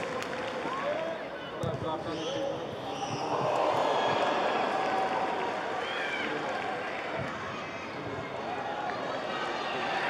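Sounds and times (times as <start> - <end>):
light crowd: 0.0 - 10.0.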